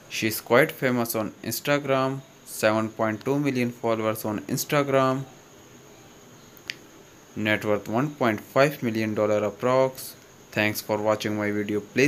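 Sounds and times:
person speaking: 0:00.0 - 0:05.4, 0:07.4 - 0:12.0
faint steady hiss: 0:00.0 - 0:12.0
sharp click: 0:06.6 - 0:06.9.

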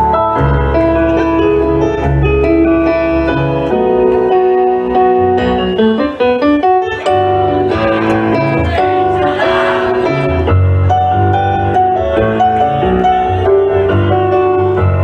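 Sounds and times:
solo piano through speakers: 0:00.0 - 0:15.0.

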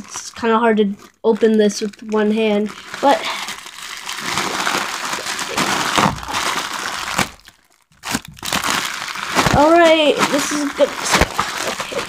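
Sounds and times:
plastic bag crinkling and rustling: 0:00.0 - 0:12.0
plastic crackles: 0:00.0 - 0:12.0.

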